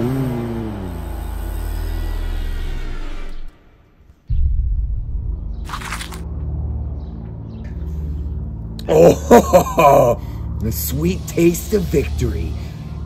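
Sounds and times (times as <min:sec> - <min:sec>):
background music: 0:04.3 - 0:13.0
low rumbling drone: 0:04.3 - 0:13.0.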